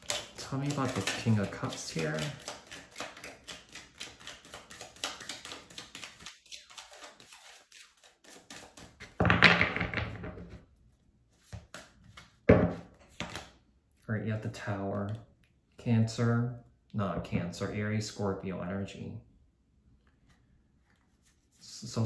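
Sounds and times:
cards being shuffled: 0.0s - 9.2s, 13.0s - 13.6s.

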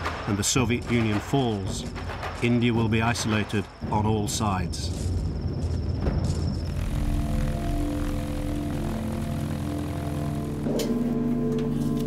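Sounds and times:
low rumble: 3.8s - 11.2s
propeller aircraft engine droning: 6.3s - 12.0s.

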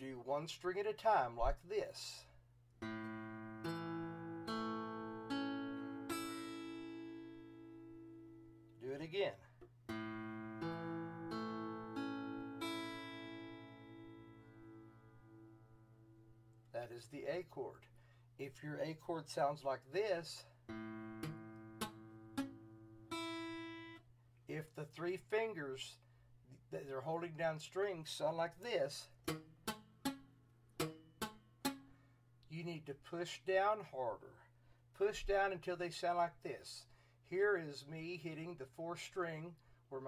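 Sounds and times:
guitar chord picked string by string: 2.8s - 8.7s, 9.6s - 16.6s, 20.7s - 24.0s, 29.2s - 31.9s.

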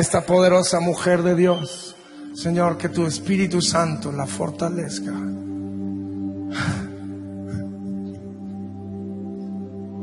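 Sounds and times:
soft keyboard chord: 1.0s - 10.0s.

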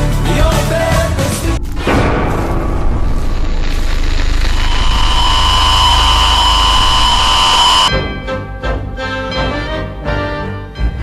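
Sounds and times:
high electronic whine: 3.4s - 7.9s
television static hiss: 4.6s - 7.9s.

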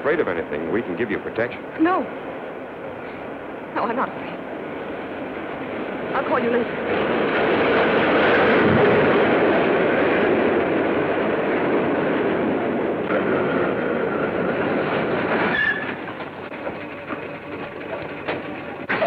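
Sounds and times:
train rumbling with wheel clatter: 0.0s - 19.0s
train brake squeal: 15.4s - 16.1s.

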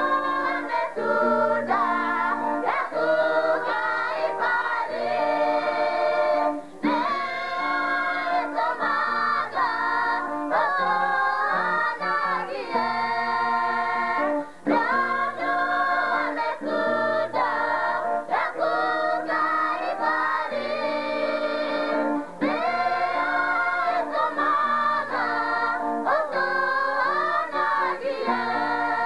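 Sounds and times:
choir singing gospel: 0.0s - 29.0s.

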